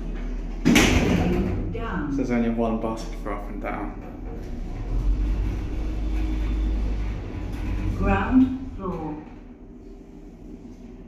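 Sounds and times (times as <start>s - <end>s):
faint hum: 0.0s - 11.0s
lift car low rumble: 0.0s - 11.0s.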